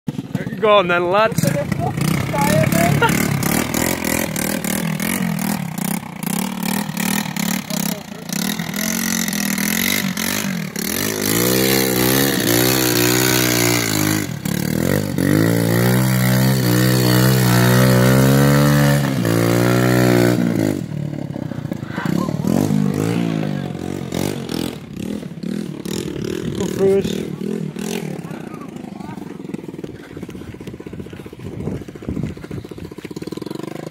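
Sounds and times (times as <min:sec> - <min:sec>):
quad bike engine revving: 0:00.1 - 0:33.9.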